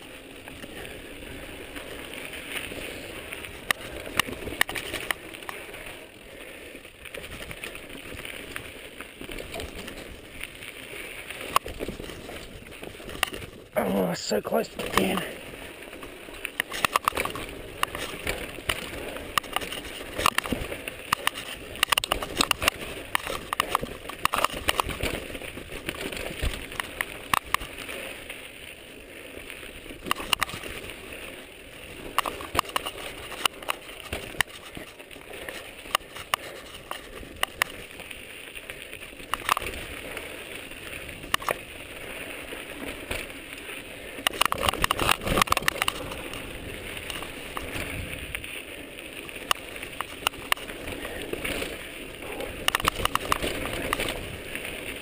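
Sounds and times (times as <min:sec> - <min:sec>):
bike knocking and rattling: 0:00.0 - 0:13.8, 0:14.7 - 0:55.0
bike tyres crunching over gravel: 0:00.0 - 0:55.0.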